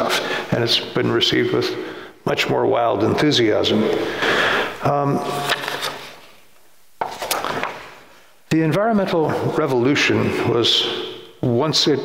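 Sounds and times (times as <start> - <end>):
paper rustling: 5.2 - 8.0.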